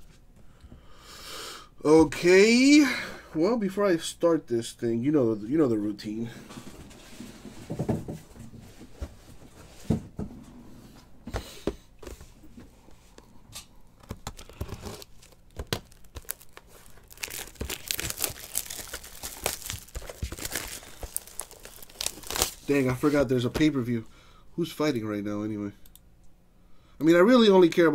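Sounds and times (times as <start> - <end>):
plastic shrink wrap crinkling: 14.0 - 23.3
plastic tearing: 14.0 - 23.3.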